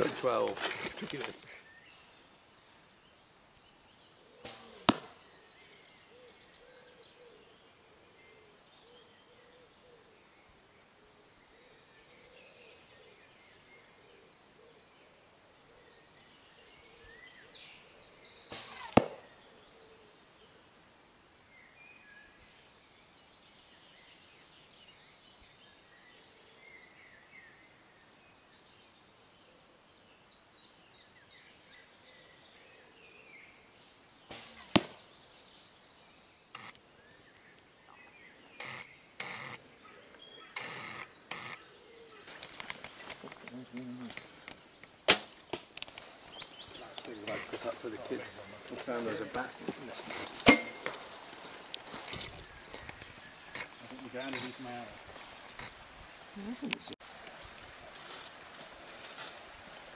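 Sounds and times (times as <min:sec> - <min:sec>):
birds singing: 0:00.0 - 0:59.9
arrow smacking foam target: 0:04.4 - 0:05.2, 0:18.5 - 0:19.3, 0:34.3 - 0:35.0, 0:45.1 - 0:45.4, 0:50.4 - 0:51.0.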